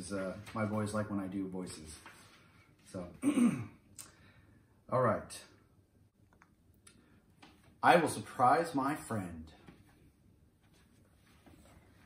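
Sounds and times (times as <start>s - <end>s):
man speaking: 0.0s - 2.1s, 4.9s - 5.6s, 7.8s - 9.7s
man clearing throat: 3.2s - 3.8s.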